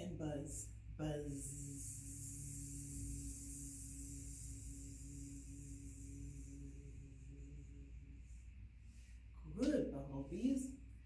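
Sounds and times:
woman humming: 1.0s - 8.4s.

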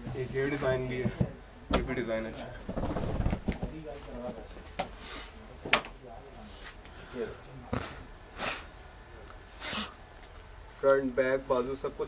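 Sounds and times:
fabric rustling and flapping: 2.6s - 4.2s.

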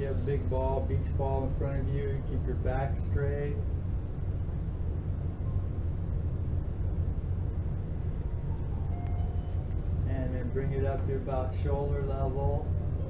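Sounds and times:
low room rumble: 0.0s - 13.0s.

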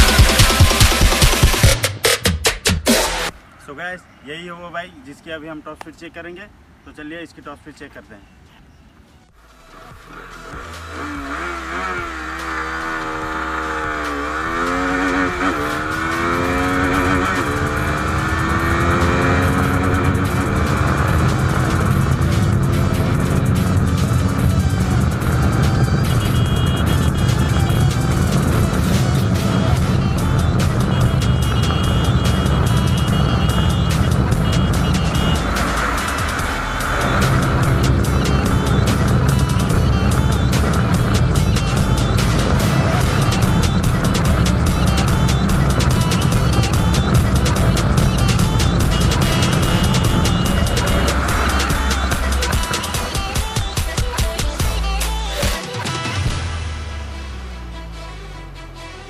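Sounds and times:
motorcycle engine at full throttle: 0.0s - 1.8s, 9.8s - 57.2s
background music with steady beat: 0.0s - 3.4s, 9.3s - 59.0s.

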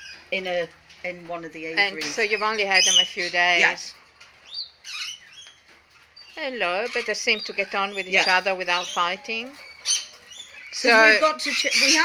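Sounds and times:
lorikeets chirping: 0.0s - 0.7s, 1.5s - 12.0s.

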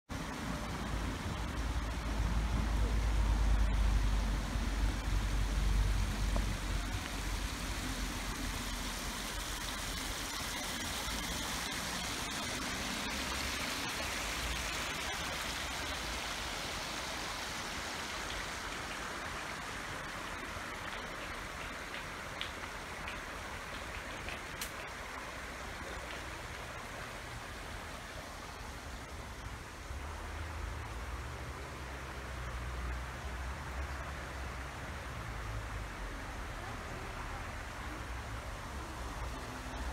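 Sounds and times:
river water rushing over step: 0.1s - 39.9s.

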